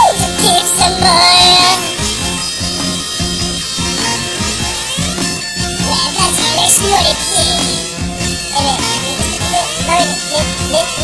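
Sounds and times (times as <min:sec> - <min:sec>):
high-pitched sped-up singing: 0:00.0 - 0:11.0
pop song backing beat: 0:00.0 - 0:11.0.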